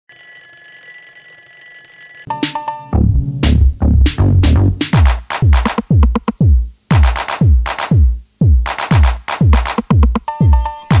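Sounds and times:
alarm clock bell ringing: 0:00.1 - 0:02.7.

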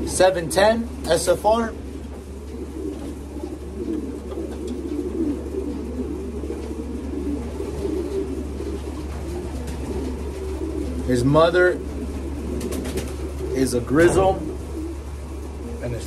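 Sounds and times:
pigeons cooing: 0:00.0 - 0:16.0
steady low hum: 0:00.0 - 0:16.0.

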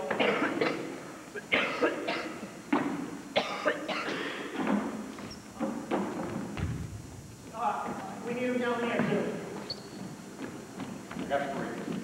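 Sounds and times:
basketballs bouncing on hardwood: 0:04.6 - 0:08.2.

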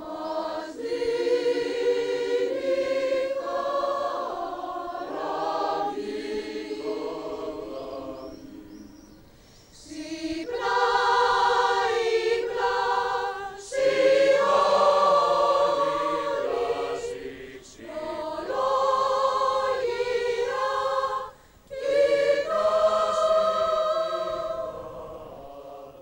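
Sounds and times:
choir singing sustained chords: 0:00.0 - 0:26.0.

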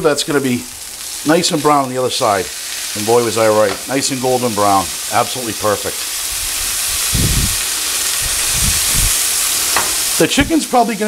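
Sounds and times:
meat sizzling in hot pans: 0:00.0 - 0:11.0
dull low thumps: 0:07.1 - 0:07.6.

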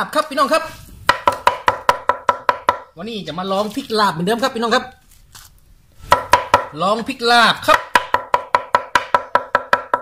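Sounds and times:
cleaver chopping on wooden block: 0:01.1 - 0:02.9, 0:06.1 - 0:06.7, 0:07.7 - 0:10.0.

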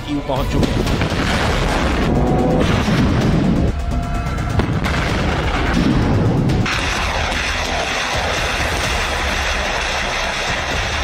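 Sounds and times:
low rumble: 0:00.5 - 0:10.1
loud rushing noise: 0:00.9 - 0:11.0.

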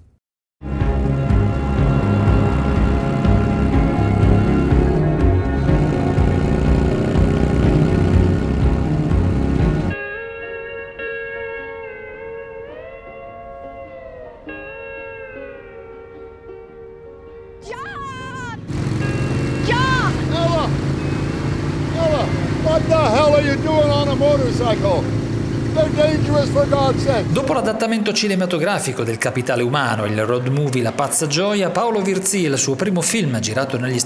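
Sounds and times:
motorcycle engine running: 0:01.4 - 0:10.0, 0:18.1 - 0:27.8
rider high-pitched cries: 0:17.6 - 0:18.7, 0:19.5 - 0:20.8.

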